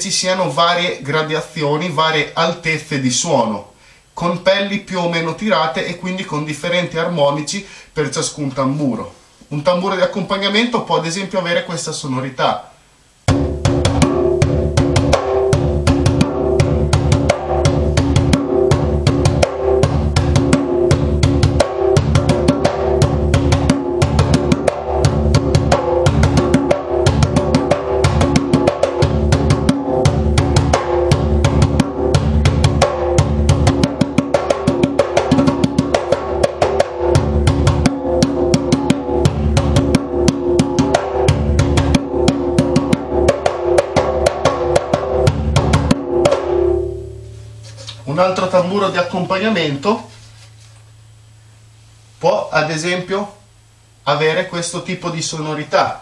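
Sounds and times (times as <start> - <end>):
djembe played by hand: 13.3 - 48.0.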